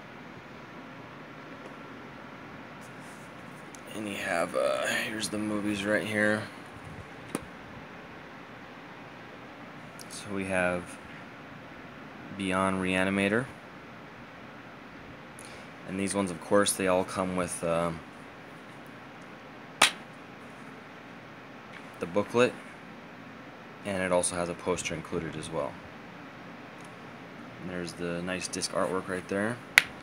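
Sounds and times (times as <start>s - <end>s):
faint room hiss: 0.0s - 30.0s.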